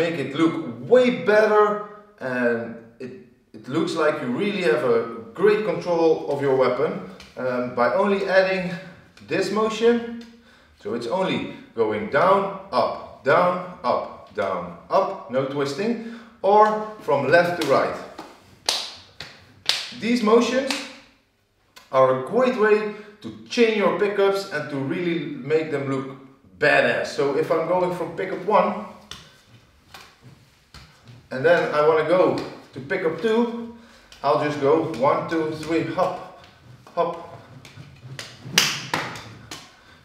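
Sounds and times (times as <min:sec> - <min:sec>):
wooden stick slapping palms: 0:06.3 - 0:07.4, 0:16.5 - 0:21.9, 0:28.2 - 0:40.0
stick slapping into palms: 0:17.6 - 0:20.0, 0:33.9 - 0:39.9.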